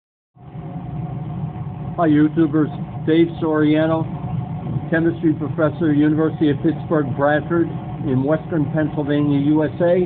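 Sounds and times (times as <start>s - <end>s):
mechanical hum of equipment: 0.4s - 10.0s.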